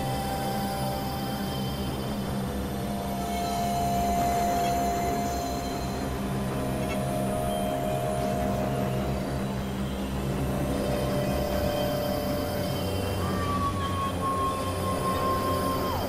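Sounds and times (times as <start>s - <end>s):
synthesizer drone music: 0.0s - 16.0s.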